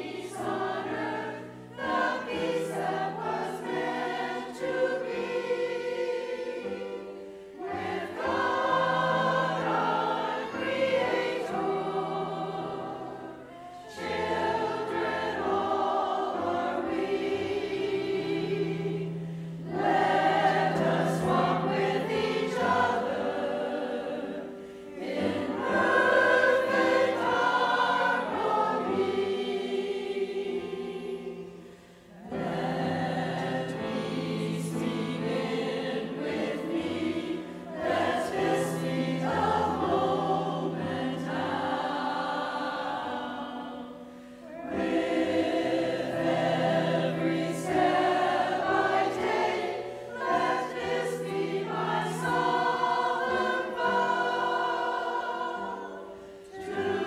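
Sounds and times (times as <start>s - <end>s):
choir singing: 0.0s - 57.0s.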